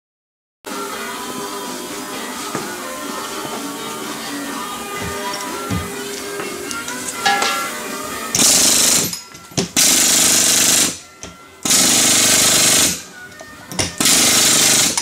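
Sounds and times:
pneumatic rock drill hammering: 0:08.4 - 0:11.0, 0:11.6 - 0:13.0, 0:13.7 - 0:15.0.

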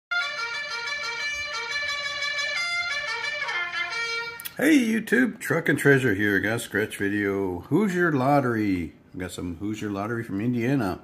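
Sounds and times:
trumpet playing bright notes: 0:00.1 - 0:04.5.

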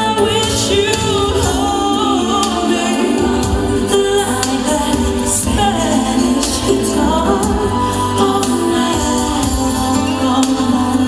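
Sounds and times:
song with sustained vocals: 0:00.0 - 0:11.0.

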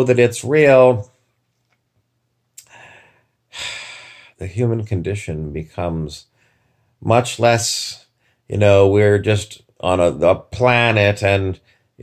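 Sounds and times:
man breathing: 0:02.6 - 0:04.4, 0:06.2 - 0:07.0, 0:08.1 - 0:08.5.

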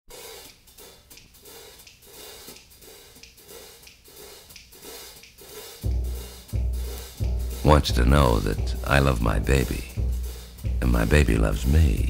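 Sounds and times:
jazz band playing: 0:05.6 - 0:12.0.

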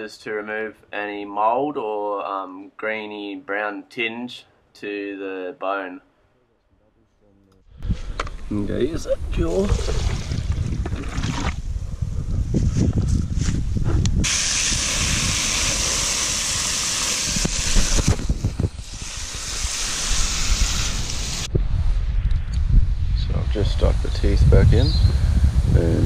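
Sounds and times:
low rumbling noise: 0:07.7 - 0:26.0
hose nozzle spraying water: 0:14.2 - 0:21.5.

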